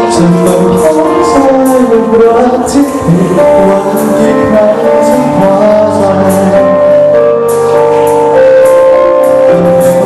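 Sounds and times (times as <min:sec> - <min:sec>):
man singing into microphone: 0:00.0 - 0:07.5, 0:08.6 - 0:10.0
loud instrumental accompaniment: 0:00.0 - 0:10.0.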